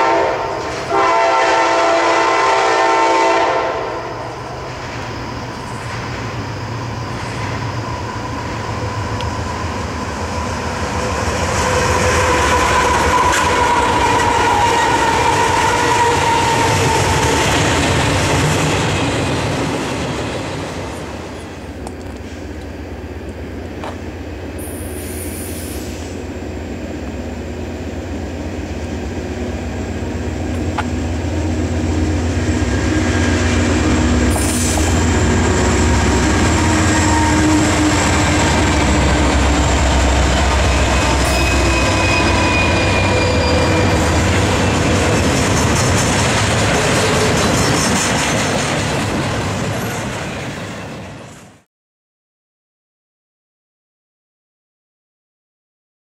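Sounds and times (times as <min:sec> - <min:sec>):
diesel locomotive engine rumble: 0:00.0 - 0:51.6
train steady pitched tone: 0:00.0 - 0:51.6.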